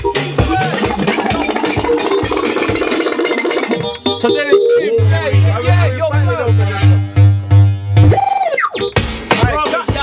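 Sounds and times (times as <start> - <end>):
steady kick drum: 0.0 - 4.4, 9.0 - 10.0
electronic dance music: 0.0 - 10.0.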